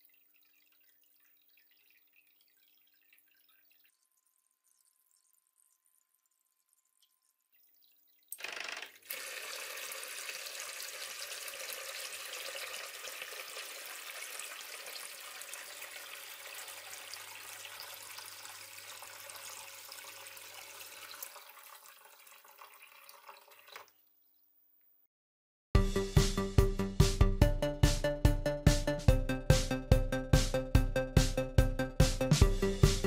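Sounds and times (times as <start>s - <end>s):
water pump humming: 0.0s - 23.0s
water splashing into plastic bucket: 8.3s - 23.9s.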